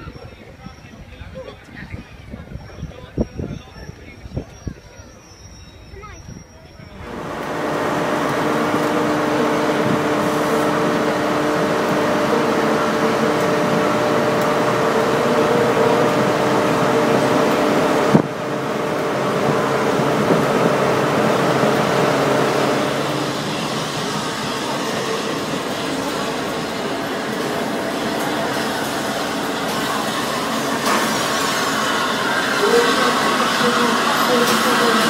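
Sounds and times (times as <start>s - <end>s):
steam locomotive hiss and rumble: 0.0s - 35.0s
steady tones: 7.0s - 35.0s.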